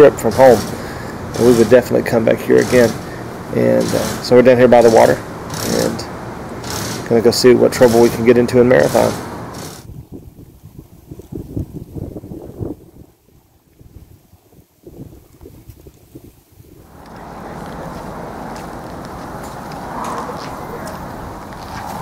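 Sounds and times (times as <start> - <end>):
steady hiss: 0.0 - 9.9
wind buffeting microphone: 8.8 - 22.0.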